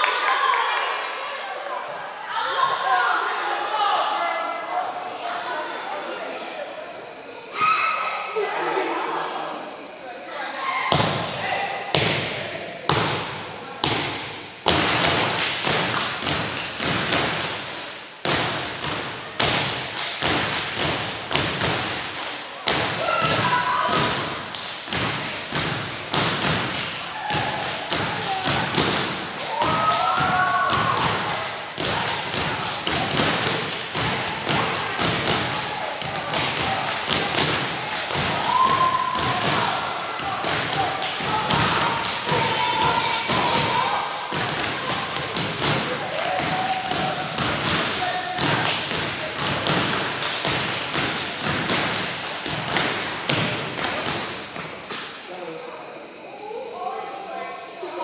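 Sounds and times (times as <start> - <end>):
people clapping: 0.0 - 2.0, 14.7 - 17.8, 19.4 - 23.1, 24.6 - 55.1
performers shouting: 34.1 - 48.6.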